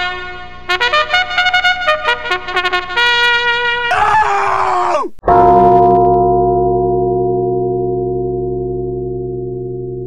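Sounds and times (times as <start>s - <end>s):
held brass chord: 0.0s - 3.9s
deep gong-like tone: 5.3s - 10.0s.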